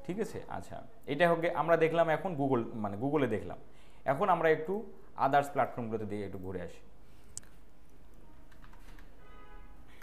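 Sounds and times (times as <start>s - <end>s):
keyboard typing: 8.1s - 9.2s.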